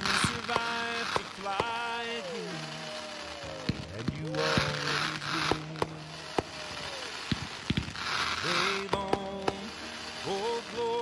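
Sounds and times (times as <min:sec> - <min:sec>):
country song with sung note: 0:00.0 - 0:07.3, 0:08.2 - 0:11.0
fireworks bangs: 0:00.0 - 0:11.0
fireworks crackle: 0:00.0 - 0:11.0.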